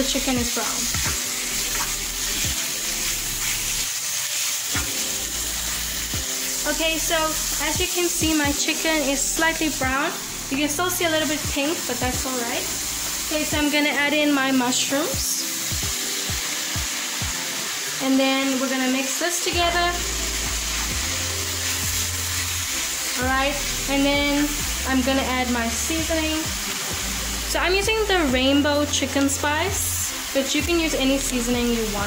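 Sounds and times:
food sizzling in a frying pan: 0.0s - 32.0s.

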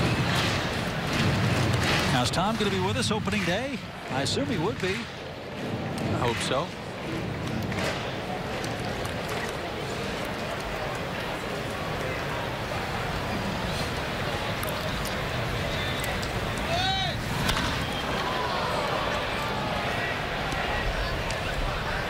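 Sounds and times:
crowd murmuring: 0.0s - 22.0s.

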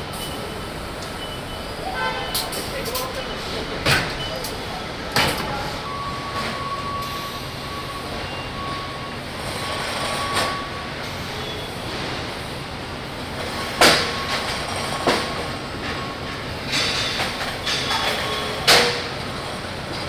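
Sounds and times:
tool clanks and hisses: 16.7s - 19.1s.

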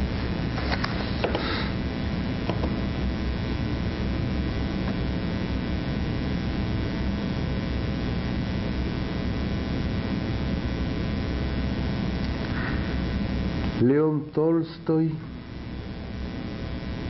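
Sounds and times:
electrical mains hum with hiss: 0.0s - 17.0s.

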